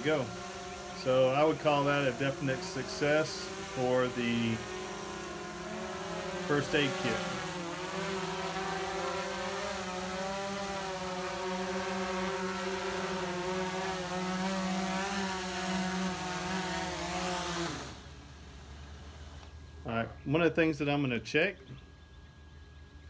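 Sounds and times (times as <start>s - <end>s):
drone propellers humming: 0.0s - 23.0s.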